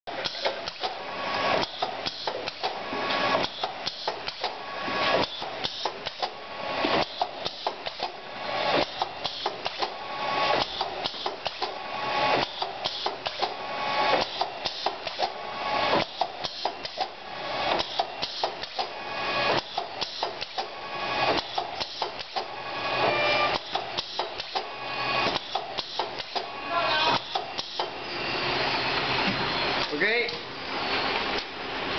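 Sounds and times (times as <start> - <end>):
short machine tone: 23.0 - 23.6.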